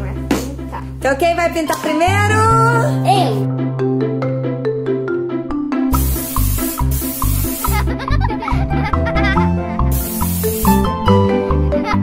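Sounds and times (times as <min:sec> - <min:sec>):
upbeat background music: 0:00.0 - 0:12.0
aerosol spray hissing: 0:05.9 - 0:08.1, 0:09.8 - 0:11.0.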